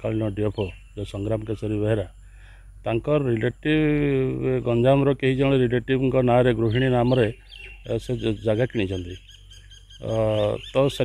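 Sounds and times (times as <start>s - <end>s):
man speaking: 0.0s - 2.1s, 2.9s - 9.2s, 10.0s - 11.0s
faint bird chirps: 0.0s - 11.0s.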